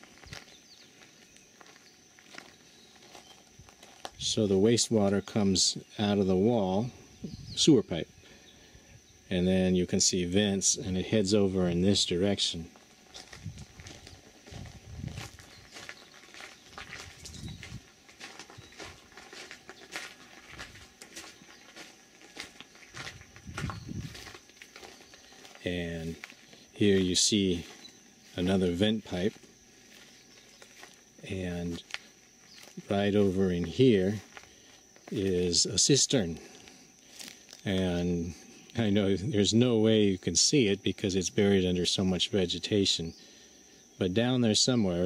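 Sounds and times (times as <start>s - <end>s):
footsteps on gravel: 0.0s - 6.2s, 11.9s - 39.1s
faint high-pitched hum: 0.0s - 45.0s.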